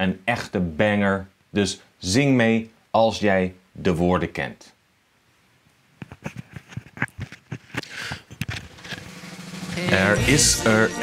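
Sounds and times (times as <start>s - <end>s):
birthday song instrumental backing: 6.5s - 11.0s
snare drum fill: 8.7s - 11.0s.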